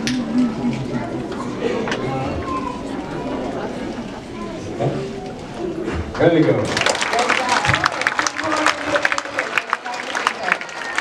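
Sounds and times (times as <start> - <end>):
crowd voices: 0.0 - 11.0
audience applause: 6.2 - 11.0.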